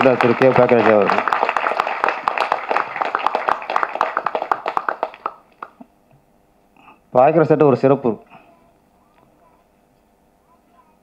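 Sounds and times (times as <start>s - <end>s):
applause: 0.0s - 5.8s.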